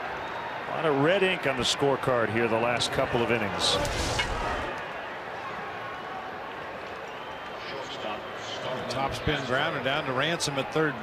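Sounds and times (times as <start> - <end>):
ballpark crowd noise: 0.0 - 11.0.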